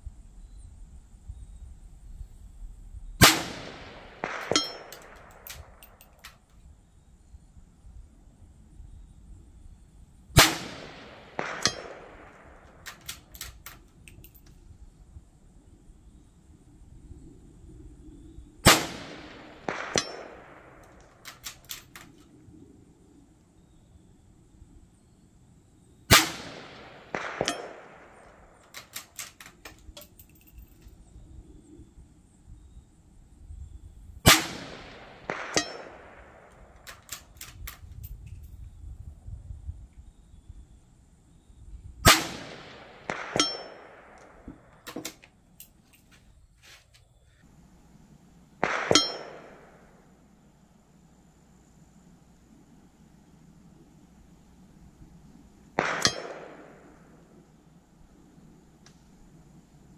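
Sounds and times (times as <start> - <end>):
rifle shots: 3.2 - 6.4, 10.4 - 14.0, 18.6 - 22.2, 26.1 - 30.0, 34.3 - 37.8, 42.1 - 45.2, 48.6 - 50.2, 55.7 - 57.6
rifle bolt clicks: 4.2 - 6.6, 12.7 - 14.5, 20.8 - 22.3, 28.6 - 30.9, 36.8 - 38.1.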